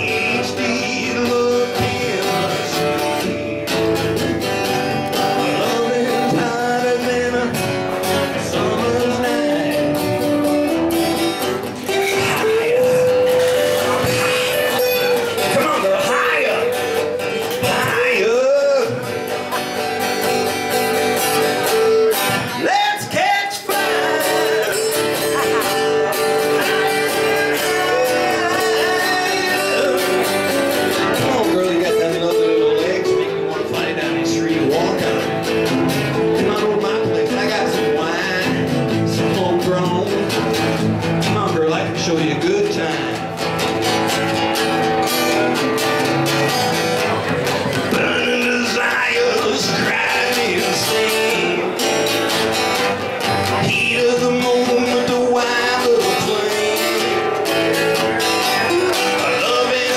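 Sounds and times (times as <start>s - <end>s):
acoustic guitars playing: 0.0s - 59.9s.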